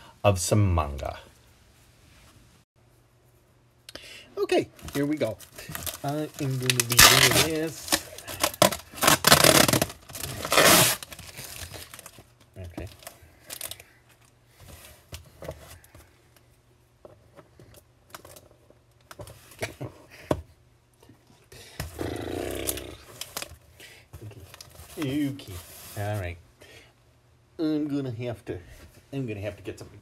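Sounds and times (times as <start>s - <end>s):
cardboard crinkling: 4.7s - 13.8s
packing tape tearing: 5.7s - 12.2s.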